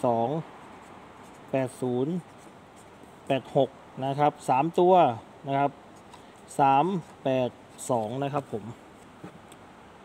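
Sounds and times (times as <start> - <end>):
man speaking: 0.0 - 0.5, 1.5 - 2.3, 3.2 - 5.8, 6.5 - 8.8.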